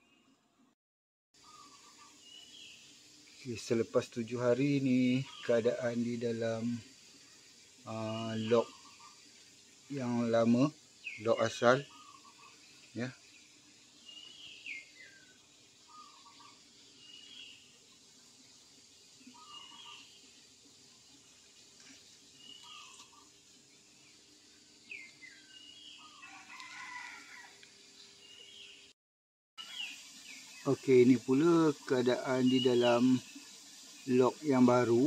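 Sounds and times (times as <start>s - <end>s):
faint bird calls: 1.4s - 2.7s, 7.9s - 9.2s, 11.0s - 13.2s, 14.1s - 17.6s, 19.2s - 20.2s, 21.8s - 23.4s.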